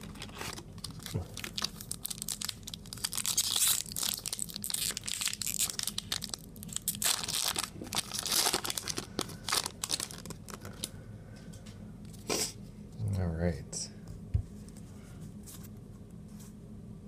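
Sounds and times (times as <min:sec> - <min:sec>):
foil wrapper tearing and crinkling: 0:00.0 - 0:10.9.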